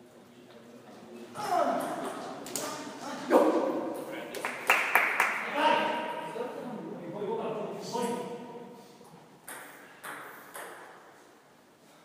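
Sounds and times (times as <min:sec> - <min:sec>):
table tennis ball bouncing: 0:09.4 - 0:11.1.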